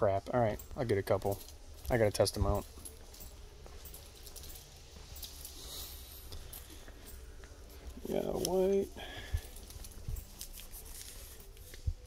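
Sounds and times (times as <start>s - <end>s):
handling clicks and rustles: 0.1s - 12.0s.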